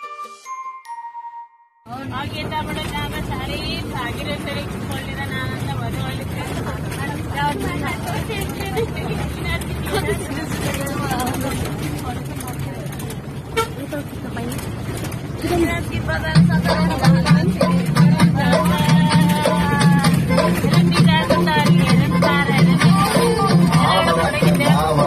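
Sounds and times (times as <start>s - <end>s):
bus engine rumble: 1.9s - 25.0s
passengers talking and laughing: 1.9s - 25.0s.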